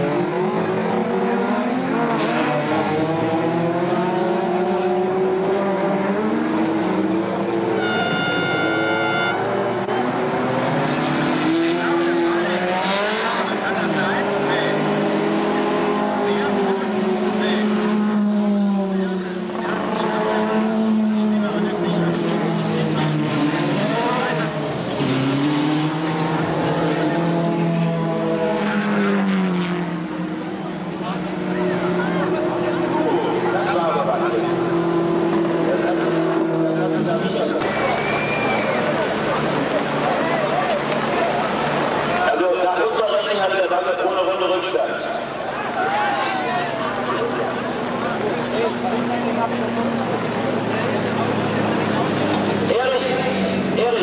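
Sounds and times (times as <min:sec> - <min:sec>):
racing car engines revving: 0:00.0 - 0:54.0.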